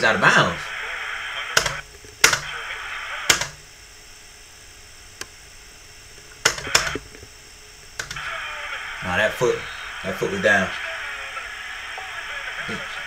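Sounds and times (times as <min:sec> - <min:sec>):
crowd noise: 0:08.2 - 0:13.0.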